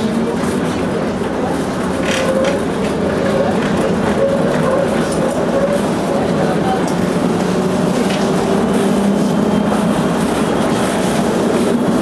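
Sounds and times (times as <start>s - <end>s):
tram wheels rolling on rails: 0.0s - 12.0s.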